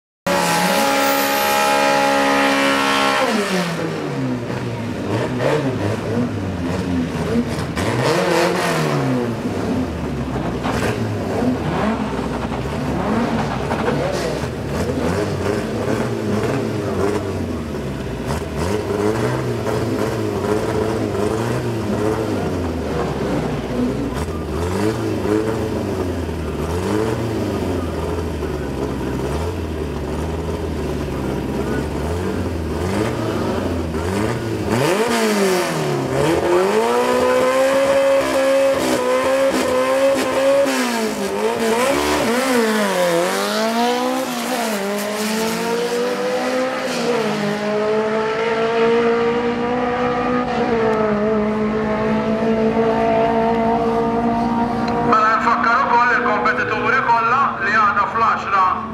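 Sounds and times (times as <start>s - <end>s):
drag racing engines revving: 0.3s - 58.9s.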